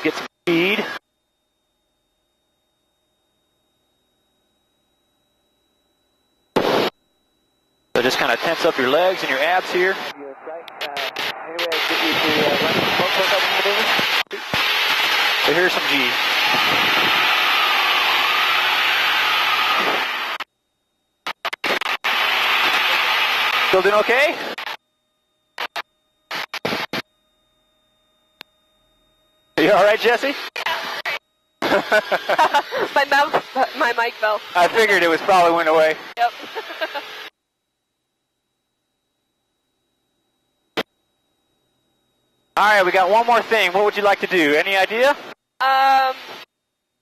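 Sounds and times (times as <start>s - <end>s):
man speaking: 0.0s - 1.0s, 8.0s - 13.9s, 15.4s - 16.2s, 29.6s - 30.4s, 34.6s - 36.0s, 42.6s - 45.2s
burst of static: 6.6s - 7.0s, 8.0s - 20.5s, 21.2s - 24.8s, 25.6s - 27.0s, 29.6s - 37.3s, 42.6s - 46.5s
faint high tone: 8.8s - 12.4s.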